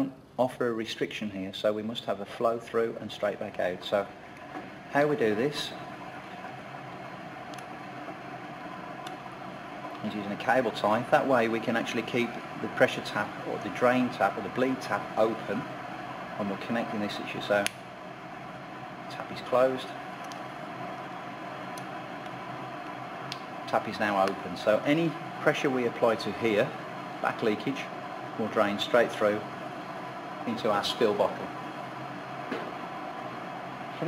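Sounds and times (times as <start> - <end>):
ventilation fan hum: 0.0 - 34.0.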